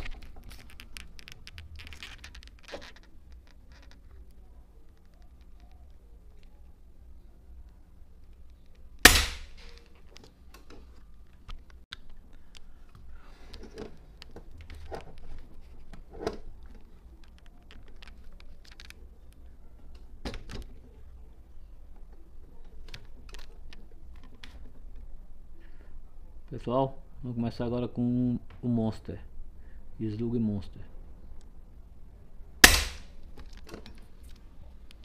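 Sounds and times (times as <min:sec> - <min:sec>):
air rifle crack: 0:09.0 - 0:09.9, 0:32.6 - 0:33.3
clicks and knocks of rifle handling: 0:32.8 - 0:35.0.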